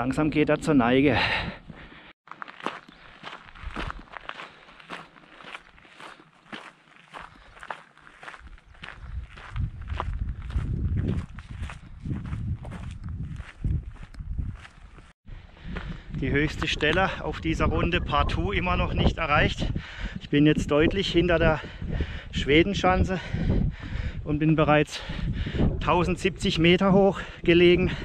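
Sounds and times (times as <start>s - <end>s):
footsteps walking: 1.7s - 17.5s
wind rumbling on microphone: 3.4s - 4.1s, 8.3s - 28.0s.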